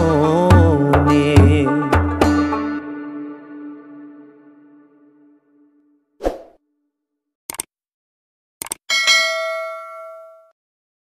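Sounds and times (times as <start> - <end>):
notification bell ding: 8.9 - 10.6.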